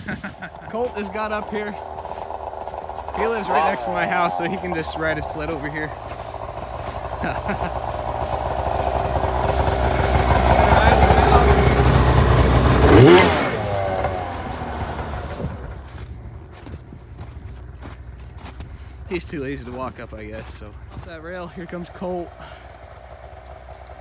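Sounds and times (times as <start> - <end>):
snowmobile engine passing: 0.0 - 23.4.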